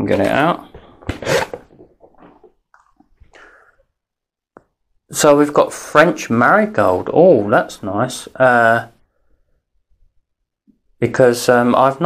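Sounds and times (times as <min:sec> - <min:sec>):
cardboard scraping: 0:00.0 - 0:02.6
cardboard rustling: 0:00.1 - 0:02.6.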